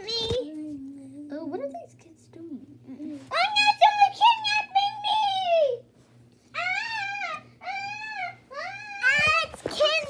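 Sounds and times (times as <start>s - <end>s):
child whining cries: 6.6s - 9.5s.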